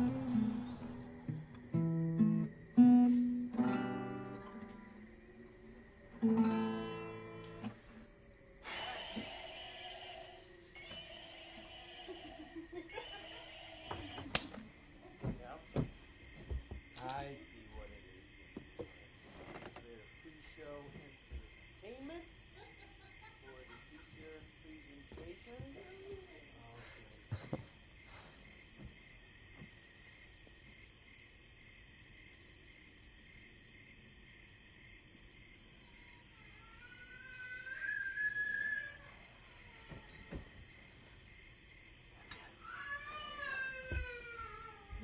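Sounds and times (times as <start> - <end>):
high-pitched insect chorus: 0.0 - 45.0
animal call: 8.6 - 14.3, 35.9 - 40.2.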